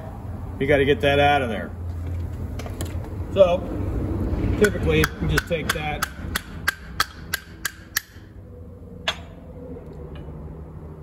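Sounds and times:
sharp taps on metal die: 0:04.6 - 0:08.2.

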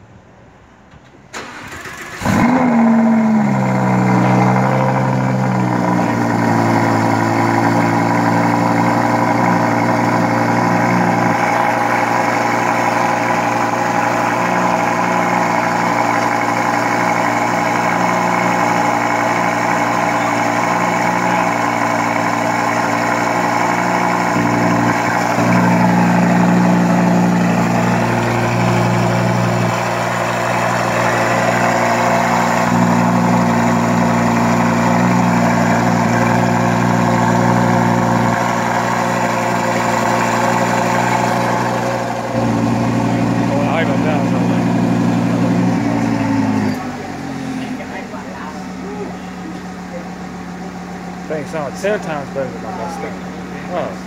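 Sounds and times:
sports car engine idling: 0:01.4 - 0:54.0.

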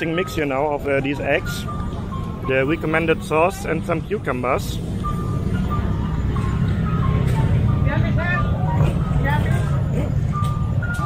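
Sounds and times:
low rumble of traffic: 0:00.0 - 0:11.0
people talking: 0:02.5 - 0:04.8, 0:07.8 - 0:10.2.

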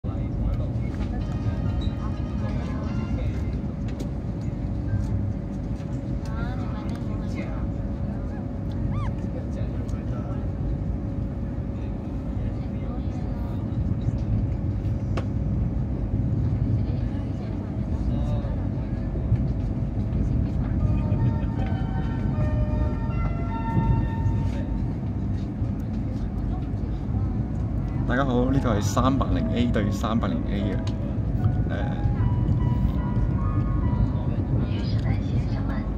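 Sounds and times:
high-speed train rumble: 0:00.0 - 0:35.9.

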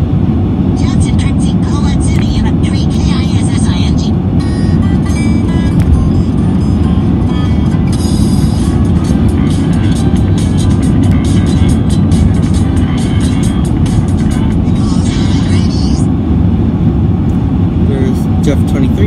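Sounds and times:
car road and engine rumble: 0:00.0 - 0:19.0
voice from a video: 0:00.7 - 0:04.2, 0:14.7 - 0:16.1, 0:17.8 - 0:19.0
music from a video: 0:04.4 - 0:16.1.

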